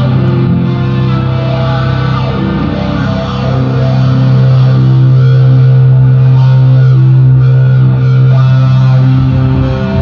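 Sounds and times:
distorted electric guitars: 0.0 - 10.0
live hard rock band: 0.0 - 10.0.

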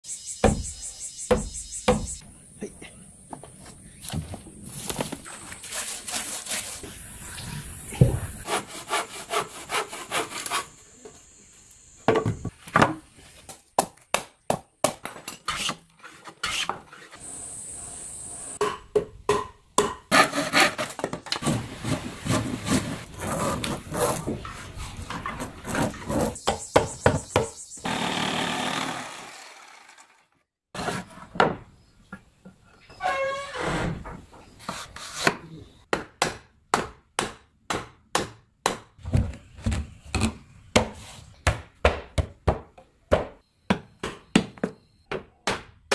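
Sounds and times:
rubbing and sawing on wood: 5.6 - 6.9, 8.4 - 10.8.

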